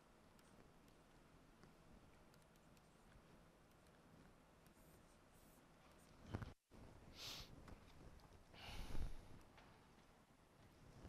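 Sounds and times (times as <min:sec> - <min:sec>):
stylus scratching on tablet: 0:02.2 - 0:06.2.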